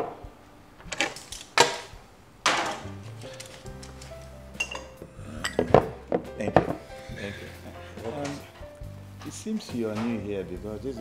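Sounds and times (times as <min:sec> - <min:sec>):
plates and cutlery clinking: 0:00.8 - 0:10.3.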